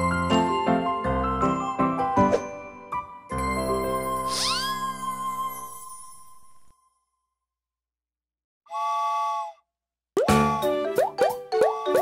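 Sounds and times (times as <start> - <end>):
bouncy children's music: 0.0 - 6.3, 10.2 - 12.0
cartoon steam-train whistle: 8.7 - 9.6.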